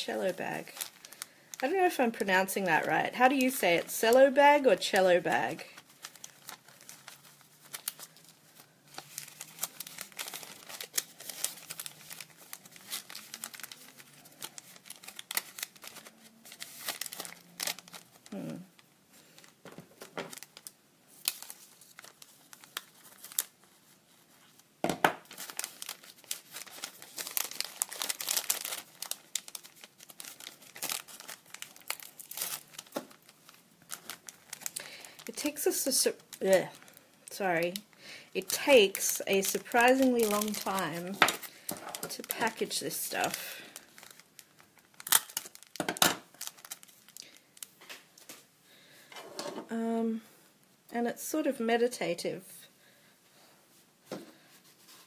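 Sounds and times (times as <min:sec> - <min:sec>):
cellophane bag crinkling: 0:00.0 - 0:24.6, 0:25.2 - 0:48.3.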